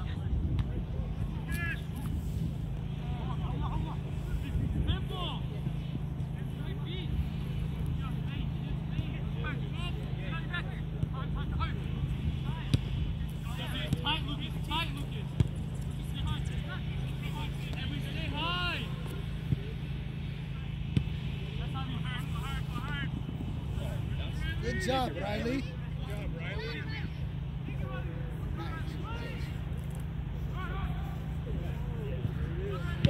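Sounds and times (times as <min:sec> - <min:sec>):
steady low rumble: 0:00.0 - 0:33.0
ball being kicked: 0:15.3 - 0:15.8.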